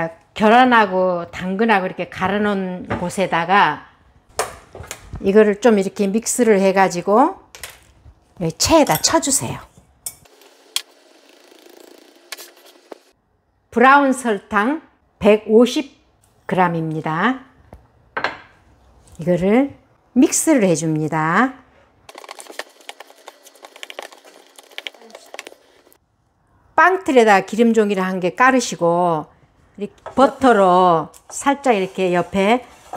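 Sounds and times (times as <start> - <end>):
spatula scraping glass bowl: 22.1 - 25.9, 31.4 - 32.9.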